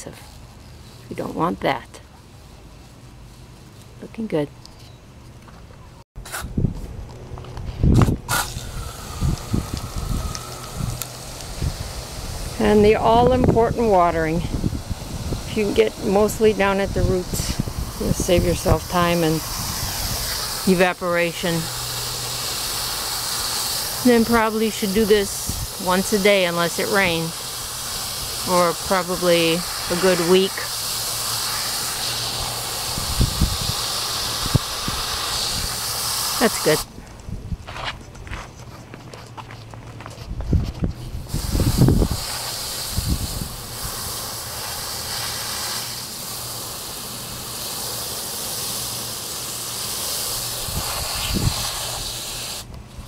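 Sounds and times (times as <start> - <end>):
wind rumble on microphone: 6.4 - 20.5, 32.9 - 35.8, 36.9 - 38.5, 40.0 - 44.0, 50.6 - 52.1
hose nozzle spraying water: 8.0 - 36.9, 41.1 - 52.8.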